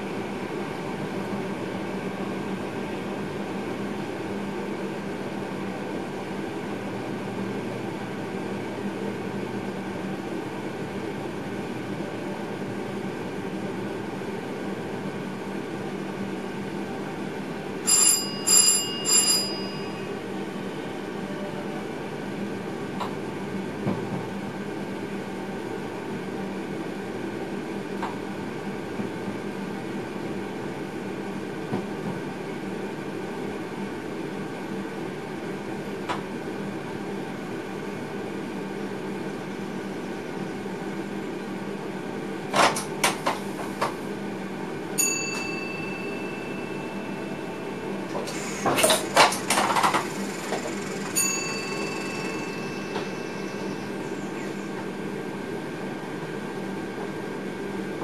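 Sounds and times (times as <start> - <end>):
train cab hum and rumble: 0.0 - 58.0
loud bell-like rings: 17.8 - 20.2, 45.0 - 48.0, 50.9 - 54.0.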